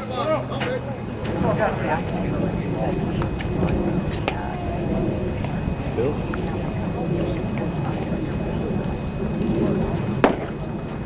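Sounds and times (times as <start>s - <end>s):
low ballpark background noise: 0.0s - 11.0s.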